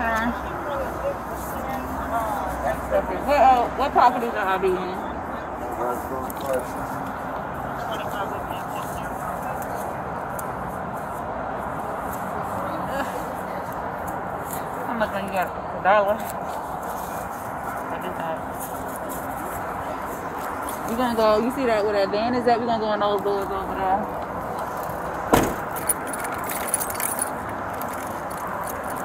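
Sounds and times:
muffled indistinct voices: 0.0s - 25.6s
steady background noise: 0.0s - 29.0s.

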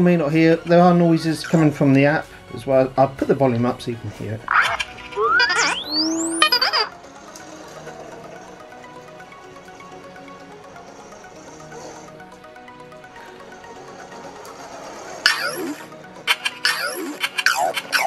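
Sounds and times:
quiet steady music: 0.0s - 18.0s
robot beeps and electronic chirps: 4.5s - 6.9s
rapid falling electronic sweeps: 4.5s - 7.6s
rising whistle: 5.2s - 6.8s.

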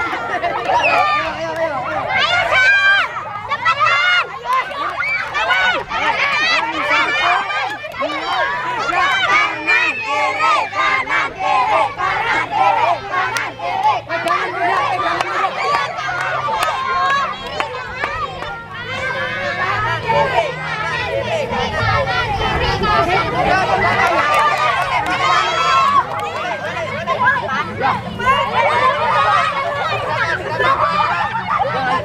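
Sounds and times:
children shouting and cheering: 0.0s - 32.0s.

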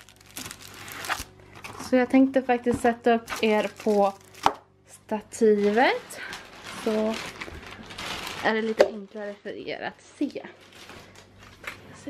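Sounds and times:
plastic packaging crinkling: 0.0s - 2.0s, 3.3s - 4.6s, 5.4s - 11.9s.

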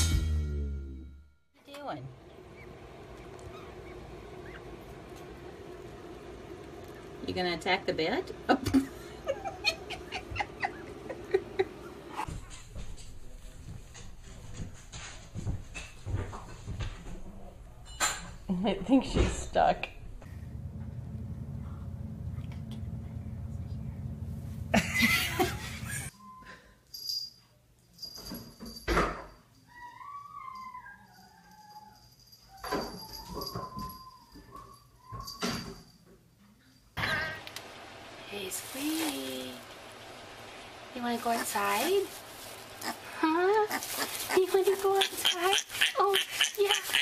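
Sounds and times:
dog whining: 2.5s - 4.8s, 29.6s - 35.4s
small pet squeaky cries: 29.7s - 32.0s, 45.0s - 47.0s.

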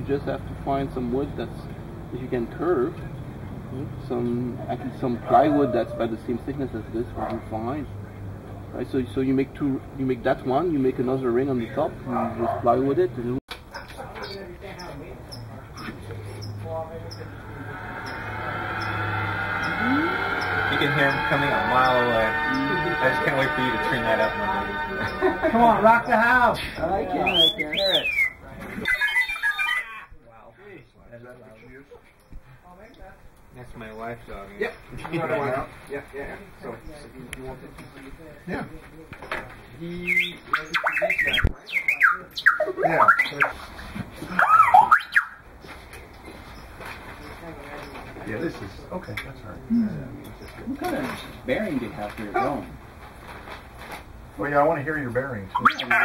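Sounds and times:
droid speaker low hum: 16.9s - 26.4s
robot beeping and whistling: 17.1s - 26.2s, 40.0s - 43.6s, 44.3s - 45.4s, 55.5s - 56.0s
music from speaker: 17.8s - 26.6s.

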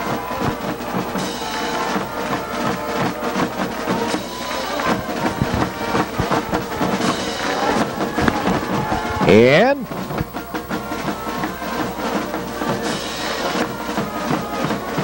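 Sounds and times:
school band playing: 0.0s - 15.0s.

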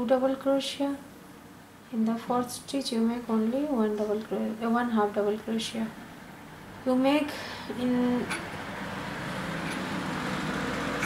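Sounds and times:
steady rumbling background noise: 0.0s - 11.0s.

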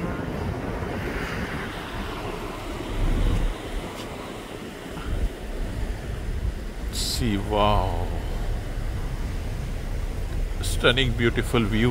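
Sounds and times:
water rushing in ship's wake: 0.0s - 11.9s
wind buffeting microphone: 0.0s - 11.9s.

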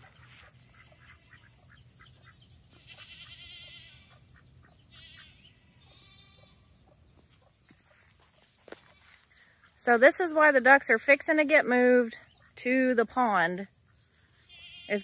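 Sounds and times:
low steady outdoor hum: 0.0s - 15.0s
faint goat bleating: 2.8s - 4.2s, 4.9s - 6.7s, 14.5s - 15.0s.

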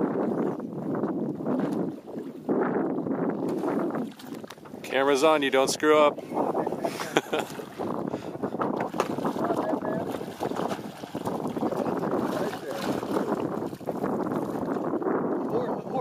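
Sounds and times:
water splashing and sloshing: 0.0s - 16.0s.

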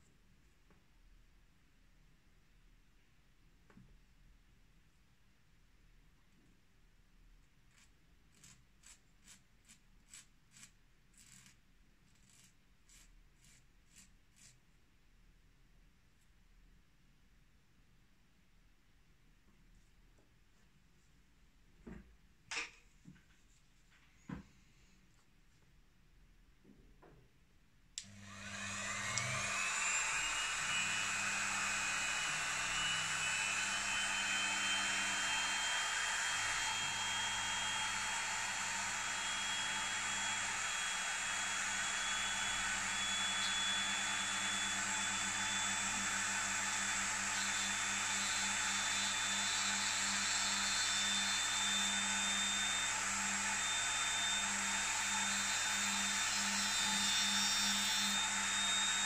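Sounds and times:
rotary tool whining: 28.0s - 59.0s.

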